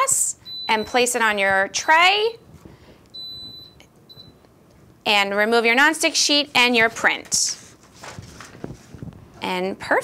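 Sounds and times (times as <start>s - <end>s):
heat press high electronic beeps: 0.4s - 1.1s, 3.2s - 4.4s.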